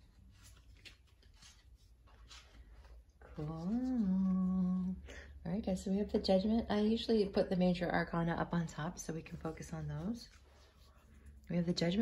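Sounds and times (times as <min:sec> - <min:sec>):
faint soft rustles: 0:00.0 - 0:06.6, 0:08.8 - 0:11.8.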